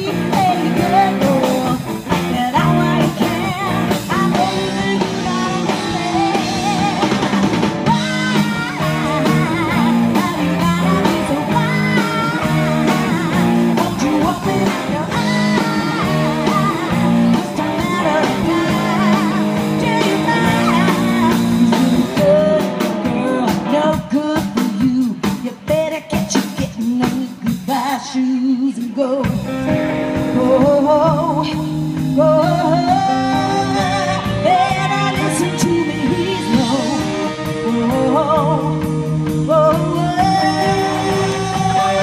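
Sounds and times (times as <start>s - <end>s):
live rock band playing: 0.0s - 42.0s
woman singing: 0.0s - 42.0s.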